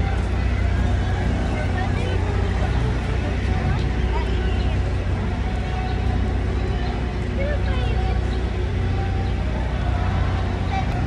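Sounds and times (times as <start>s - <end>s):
traffic rumble: 0.0s - 11.0s
voices of passers-by: 0.0s - 11.0s.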